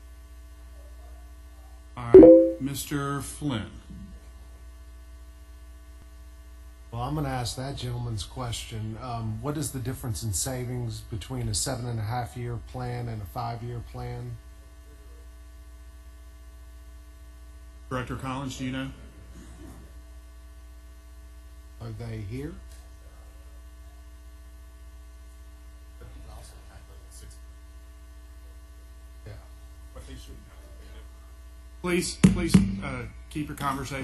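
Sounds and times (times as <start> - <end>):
electrical mains hum: 3.5 - 34.0.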